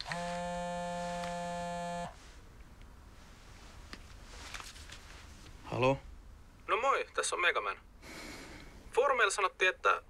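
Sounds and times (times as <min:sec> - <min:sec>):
mobile phone buzzing: 0:00.0 - 0:02.2.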